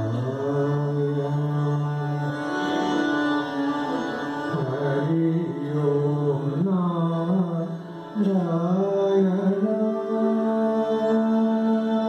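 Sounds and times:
man singing devotional song: 0.0 - 2.4, 4.3 - 12.0
sitar: 0.0 - 12.0.

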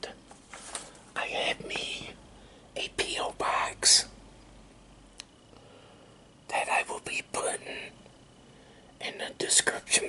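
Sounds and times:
man whispering: 0.0 - 0.2, 1.2 - 2.2, 2.8 - 4.1, 6.5 - 8.0, 9.0 - 10.0.

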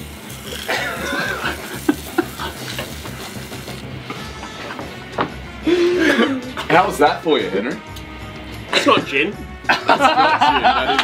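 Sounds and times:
sparkling wine jet hissing: 0.0 - 3.9.

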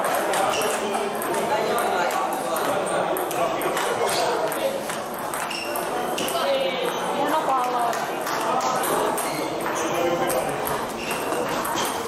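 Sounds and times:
murmur of echoing voices: 0.0 - 12.0
table tennis ball clicking: 0.0 - 12.0.

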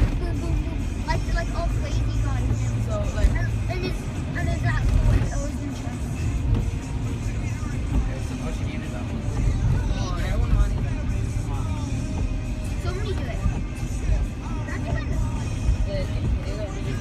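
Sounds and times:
car engine and tyre rumble: 0.0 - 17.0
music: 0.0 - 17.0.

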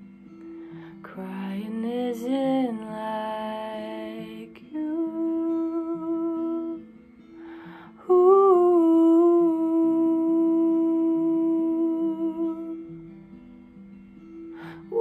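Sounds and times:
acoustic guitar picking: 0.0 - 15.0
woman humming: 8.0 - 12.8, 14.8 - 15.0.

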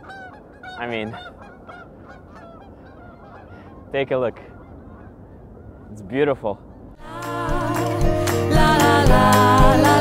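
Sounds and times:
flock of birds calling: 0.0 - 7.0.

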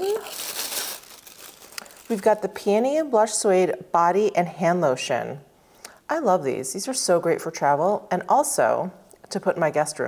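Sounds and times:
cardboard packaging crinkling: 0.0 - 2.6.

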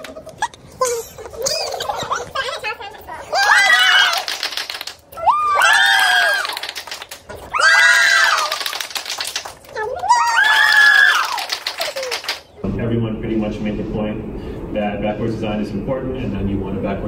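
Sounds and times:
rapid clapping: 3.8 - 5.0, 5.8 - 12.5
group cheering with whoops: 5.2 - 6.6, 7.5 - 8.7, 10.0 - 12.2.

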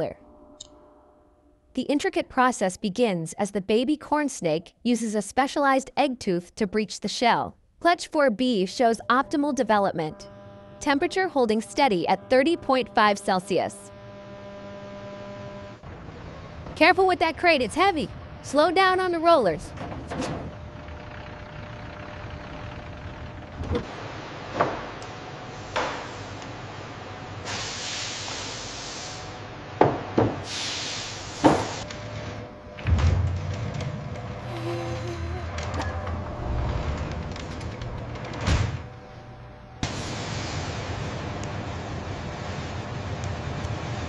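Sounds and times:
steady hiss: 27.4 - 29.3.

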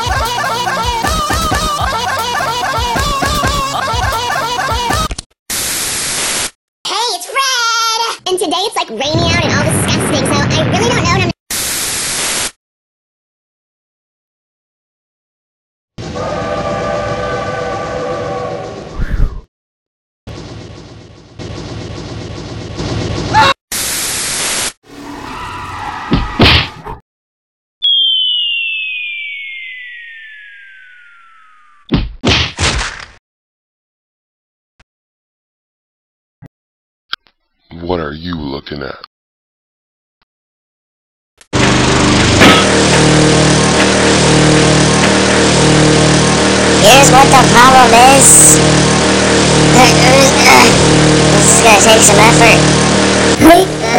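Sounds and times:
cartoon train-like rumble: 16.0 - 19.5, 41.6 - 53.9
falling whistle: 27.8 - 31.9.

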